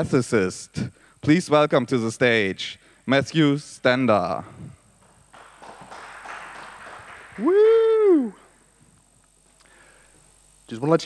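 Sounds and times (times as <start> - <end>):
audience applause: 5.3 - 7.9.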